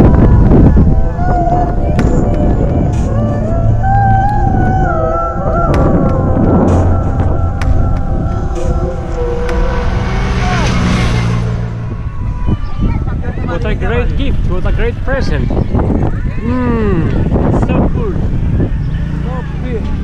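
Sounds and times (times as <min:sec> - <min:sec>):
wavering melodic gliding notes: 0:00.0 - 0:13.6
wind rumble on microphone: 0:00.0 - 0:19.4.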